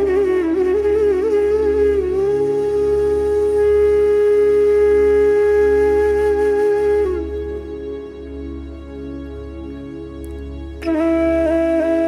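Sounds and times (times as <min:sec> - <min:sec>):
flute-like wind instrument note: 0:00.0 - 0:08.5, 0:10.8 - 0:12.0
low drone: 0:00.0 - 0:12.0.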